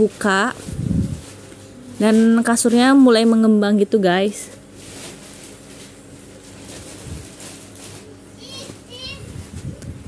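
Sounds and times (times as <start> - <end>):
plastic wrapping crinkling: 0.0 - 9.8
child's high call: 8.4 - 9.4
children's voices: 8.4 - 9.4.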